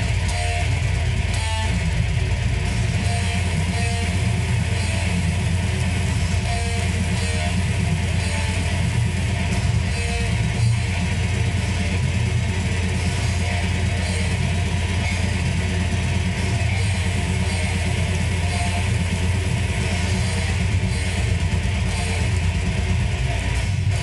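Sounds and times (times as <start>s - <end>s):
heavy metal electric guitar riff: 0.0s - 24.0s.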